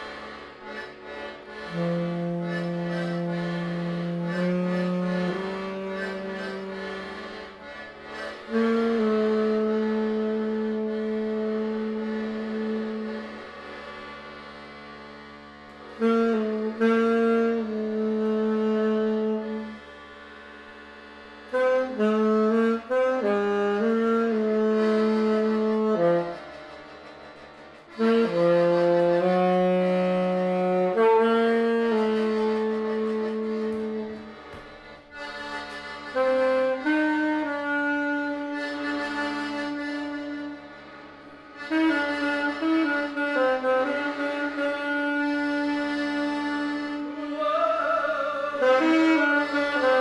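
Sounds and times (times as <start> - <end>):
slow wind instrument melody: 0.0 - 13.8, 15.1 - 20.0, 21.4 - 50.0.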